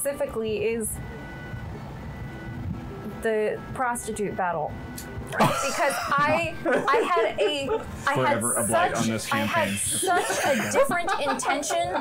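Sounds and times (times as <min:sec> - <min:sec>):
faint high whine: 0:00.0 - 0:12.0
low room rumble: 0:00.0 - 0:12.0
person speaking: 0:05.4 - 0:12.0.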